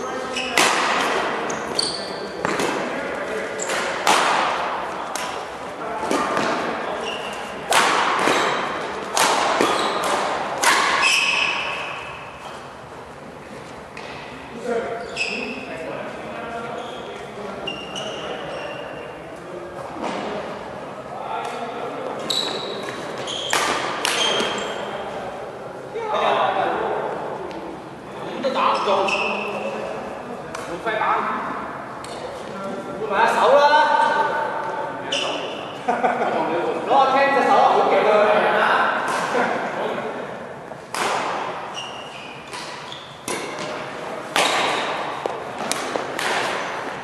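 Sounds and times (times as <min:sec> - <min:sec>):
shoe sole squeaking on court: 0:00.3 - 0:00.6, 0:01.5 - 0:02.6, 0:06.9 - 0:07.6, 0:09.6 - 0:10.1, 0:11.0 - 0:12.6, 0:14.9 - 0:15.7, 0:16.7 - 0:19.0, 0:22.2 - 0:24.9, 0:28.7 - 0:29.7, 0:35.1 - 0:35.6, 0:41.7 - 0:43.3.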